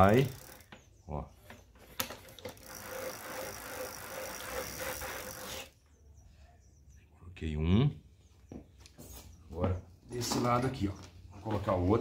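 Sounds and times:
bicycle freewheel clicking: 0:00.0 - 0:00.7, 0:02.2 - 0:05.7.

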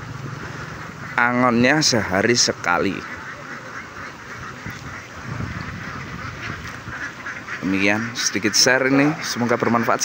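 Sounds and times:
ducks quacking: 0:00.0 - 0:10.0.

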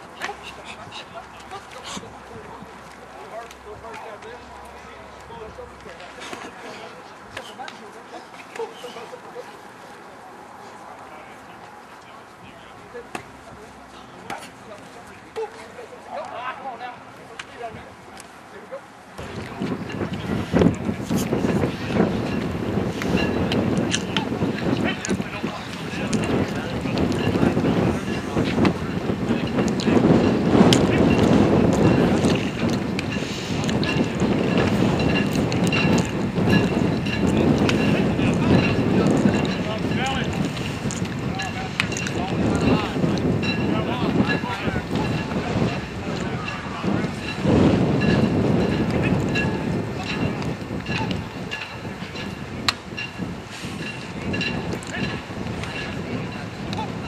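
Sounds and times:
faint voices talking: 0:00.0 - 0:57.0
wind buffeting microphone: 0:19.2 - 0:57.0.

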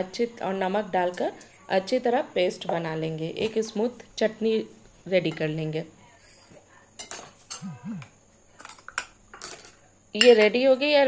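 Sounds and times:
dishes and lids clinking: 0:07.0 - 0:07.8, 0:08.6 - 0:10.5.

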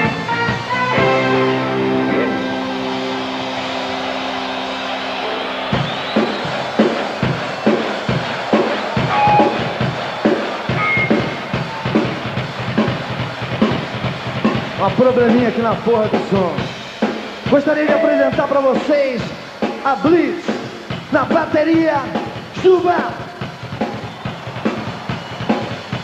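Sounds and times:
rock drum kit beat: 0:00.0 - 0:26.0
band holding a chord: 0:09.0 - 0:09.8.

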